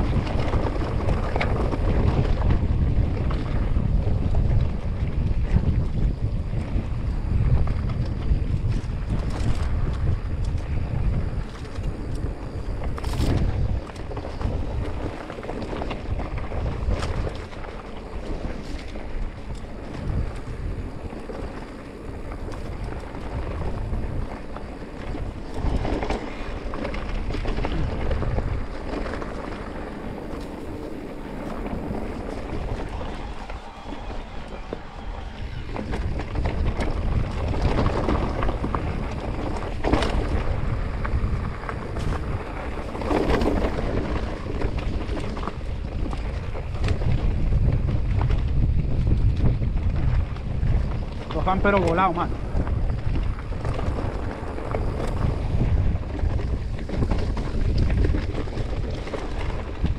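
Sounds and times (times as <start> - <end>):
bike knocking and rattling: 0.0 - 59.9
bike tyres rumbling on dirt: 0.0 - 59.9
wind buffeting microphone: 0.0 - 59.9.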